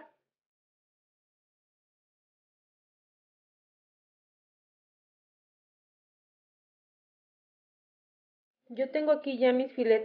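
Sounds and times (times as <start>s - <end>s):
woman's voice: 8.7s - 10.0s.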